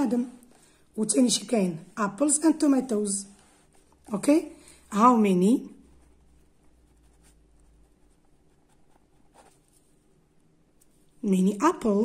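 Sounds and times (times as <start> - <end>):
pen scratching on paper: 2.7 - 4.3, 5.8 - 9.8.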